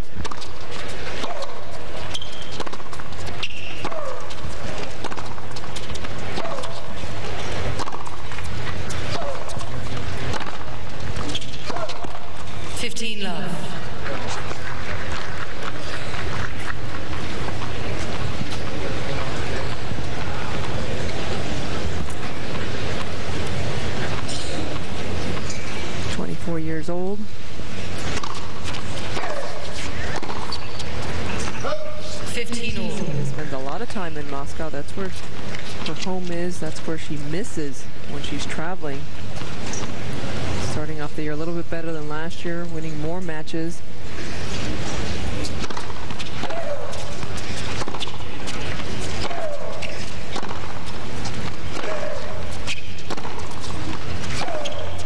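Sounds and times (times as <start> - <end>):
tennis ball bounces: 0.1 - 12.6, 28.0 - 34.1, 44.9 - 55.0
tennis racket strikes: 0.2 - 12.5, 44.5 - 55.0.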